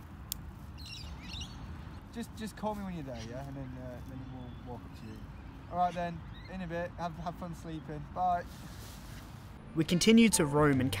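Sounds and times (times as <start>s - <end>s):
outdoor background noise: 0.0s - 11.0s
high bird chirps: 0.8s - 1.7s, 4.2s - 6.7s.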